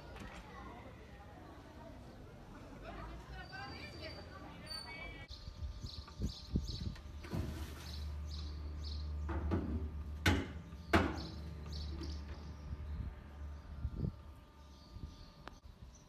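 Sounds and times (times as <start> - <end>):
small birds chirping: 3.3 - 9.4, 10.6 - 16.0
sharp knocks: 9.3 - 11.4.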